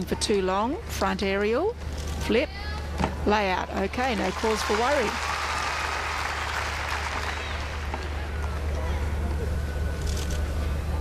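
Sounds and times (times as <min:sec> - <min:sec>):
crowd applauding: 0:04.1 - 0:08.8.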